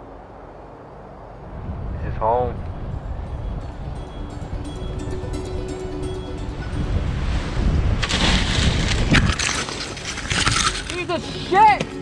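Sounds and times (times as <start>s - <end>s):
wind buffeting microphone: 1.4s - 12.0s
quiet music: 2.8s - 8.3s, 9.8s - 12.0s.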